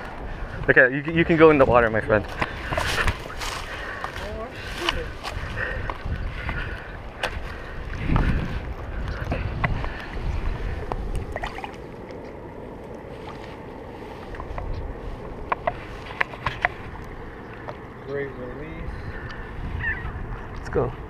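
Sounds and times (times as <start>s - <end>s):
wind rumble on microphone: 0.0s - 21.0s
water sloshing and splashing: 9.9s - 14.5s.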